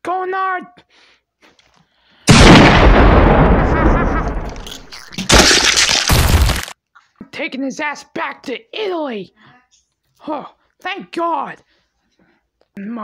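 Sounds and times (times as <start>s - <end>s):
explosion-like blast: 2.3s - 6.6s.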